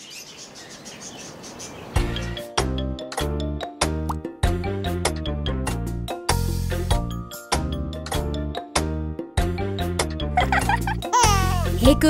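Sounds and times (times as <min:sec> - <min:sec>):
small birds chirping: 0:00.0 - 0:02.6.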